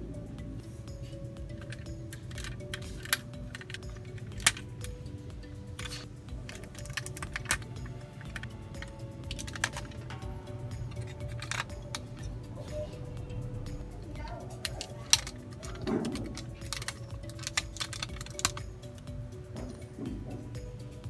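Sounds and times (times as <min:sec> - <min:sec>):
background music: 0:00.0 - 0:21.0
plastic toy clicks and snaps: 0:01.5 - 0:05.0, 0:05.8 - 0:10.1, 0:14.5 - 0:19.0.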